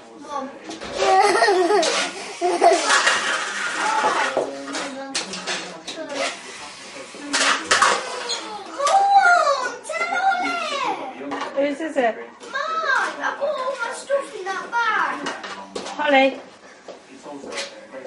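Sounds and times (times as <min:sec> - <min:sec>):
children shouting and squealing: 0:08.2 - 0:11.0.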